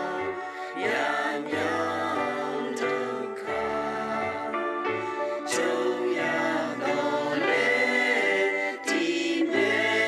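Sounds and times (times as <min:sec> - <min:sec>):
choir singing a hymn: 0:00.0 - 0:10.0.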